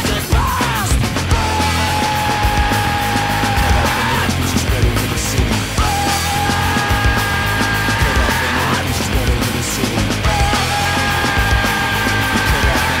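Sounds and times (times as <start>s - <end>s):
heavy rock band playing: 0.0s - 13.0s.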